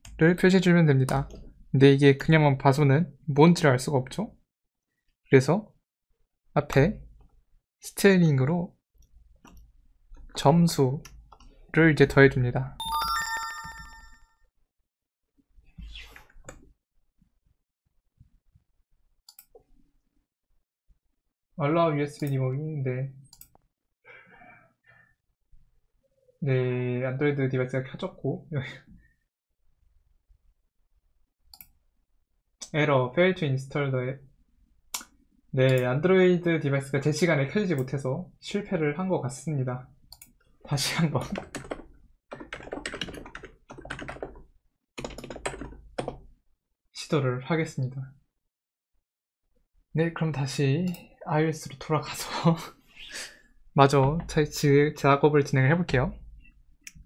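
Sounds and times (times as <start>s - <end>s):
electronic chime: 12.8s - 14.3s
fast typing on keyboard: 41.0s - 46.3s.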